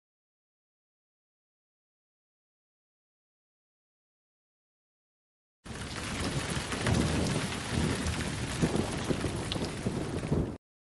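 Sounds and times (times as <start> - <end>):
rumbling crackling microphone noise: 5.7 - 10.6.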